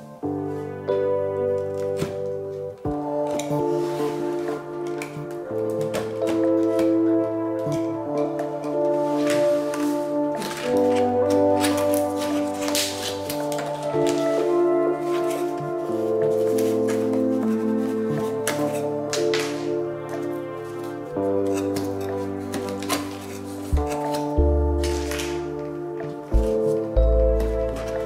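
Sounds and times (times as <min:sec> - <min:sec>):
background music sustained chords: 0:00.0 - 0:28.0.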